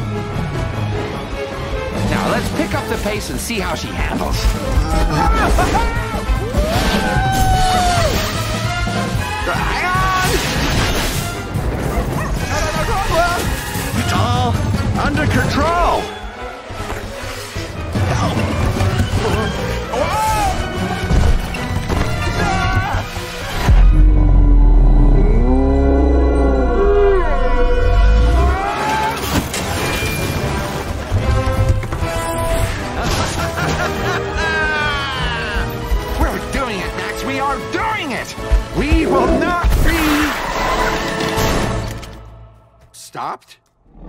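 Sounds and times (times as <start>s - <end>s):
film score music: 0.0s - 44.0s.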